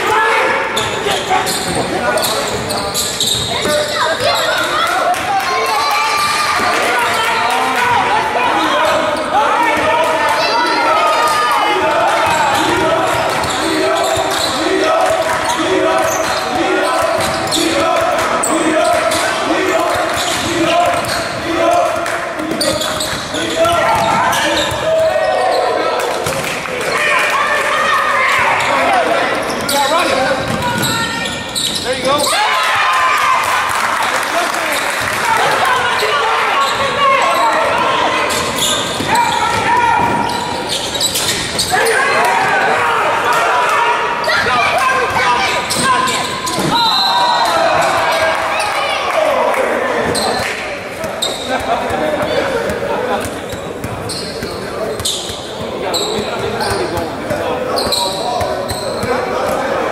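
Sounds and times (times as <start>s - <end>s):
people's voices in echoing hall: 0.0s - 59.9s.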